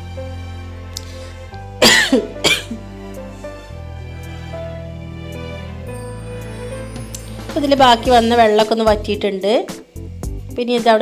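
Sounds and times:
background music: 0.0 - 11.0
person coughing: 1.8 - 2.8.

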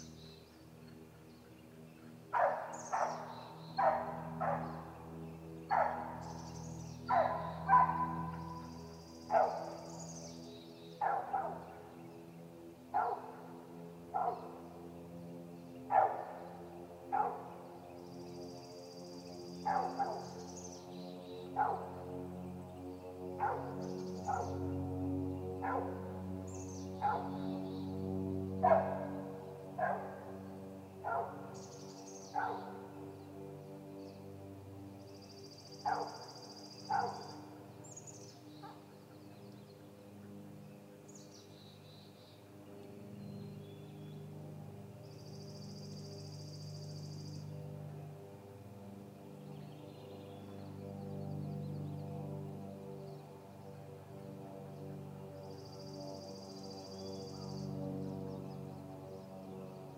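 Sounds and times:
small birds chirping faintly: 0.0 - 59.9.

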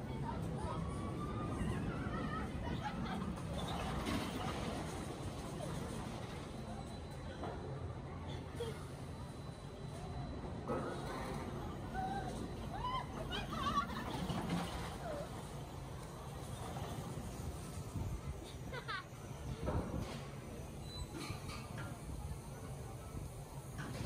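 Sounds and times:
roller coaster rumble: 0.0 - 24.0.

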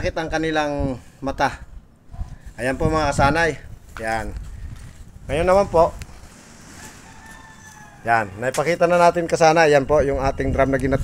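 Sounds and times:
rooster crowing: 6.6 - 8.8.

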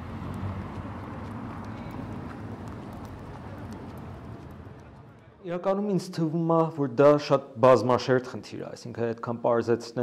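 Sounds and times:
steady background noise: 0.0 - 6.7
faint scattered clicks: 0.2 - 5.3.

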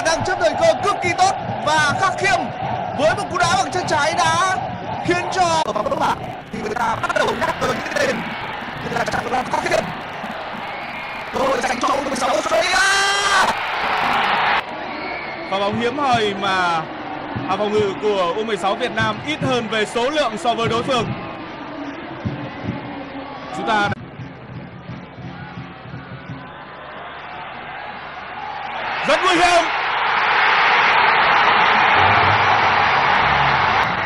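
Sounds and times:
stadium crowd noise: 0.0 - 34.0.

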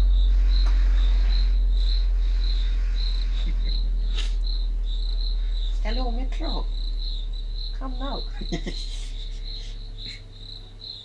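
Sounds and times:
deep bass tone from subwoofer: 0.0 - 11.0
high insect chirp: 0.0 - 11.0
short laugh: 8.3 - 10.3.

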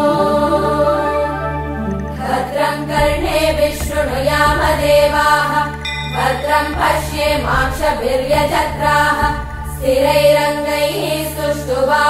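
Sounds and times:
women chanting together: 0.0 - 1.5, 2.2 - 12.0
low steady drone: 0.0 - 11.9.

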